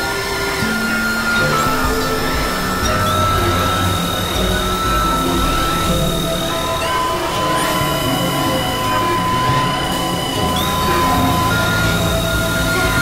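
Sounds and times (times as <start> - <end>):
held synthesizer tones: 0.0 - 13.0
steady noisy haze: 0.0 - 13.0.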